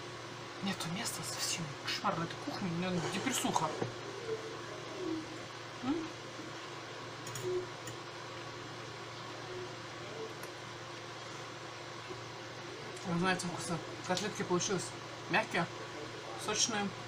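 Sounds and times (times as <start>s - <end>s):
low room hum: 0.0s - 17.0s
woman murmuring: 5.8s - 6.2s.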